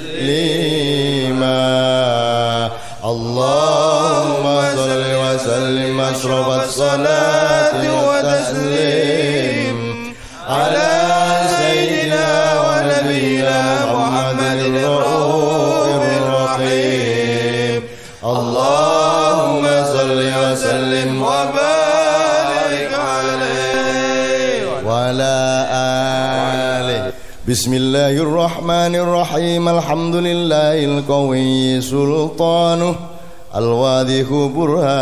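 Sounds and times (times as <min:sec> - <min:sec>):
devotional chanting: 0:00.0 - 0:35.0.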